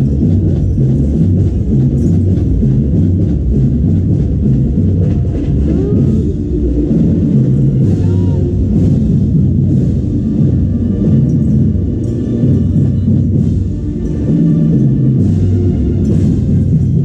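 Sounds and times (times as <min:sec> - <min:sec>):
drums and percussion: 0:00.0 - 0:17.0
marching band playing: 0:00.0 - 0:17.0.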